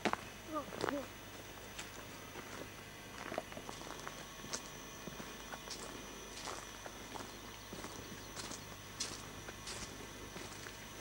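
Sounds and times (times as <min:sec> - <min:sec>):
footsteps on sandy ground and leaves: 0:00.0 - 0:11.0.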